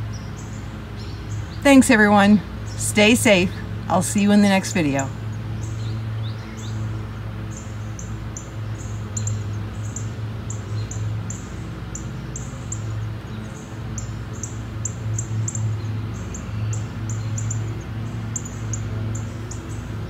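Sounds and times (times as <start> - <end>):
small birds chirping: 0.0 - 20.0
steady low hum: 0.0 - 20.0.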